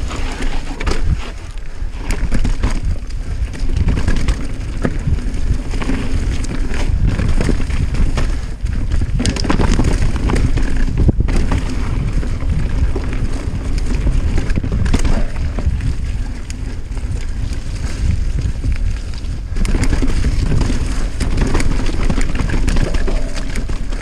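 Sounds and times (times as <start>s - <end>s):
bike clicking and rattling: 0.0s - 24.0s
tyres rolling over dirt: 0.0s - 24.0s
wind buffeting microphone: 0.0s - 24.0s.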